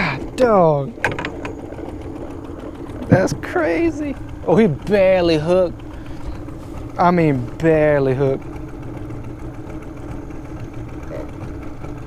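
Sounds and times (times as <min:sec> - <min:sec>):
boat motor idling: 0:00.0 - 0:12.0.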